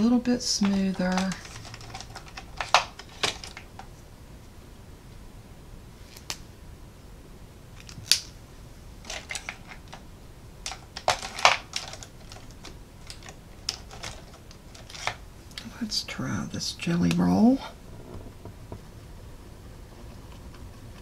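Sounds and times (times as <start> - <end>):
plastic pens clicking and rattling: 0.6 - 3.9, 9.0 - 10.0, 10.6 - 15.2.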